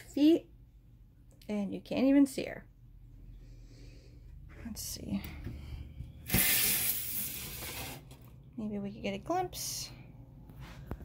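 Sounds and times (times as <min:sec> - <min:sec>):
loud hiss: 0:06.3 - 0:07.9.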